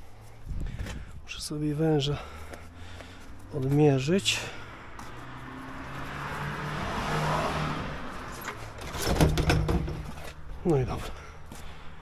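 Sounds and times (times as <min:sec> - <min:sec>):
low engine hum: 0:00.0 - 0:08.8
hose rubbing and clattering: 0:08.3 - 0:10.4.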